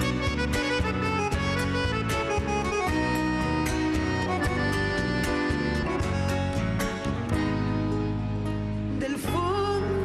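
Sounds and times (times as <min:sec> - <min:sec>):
accordion melody: 0:00.0 - 0:09.0
plucked guitars: 0:00.0 - 0:10.0.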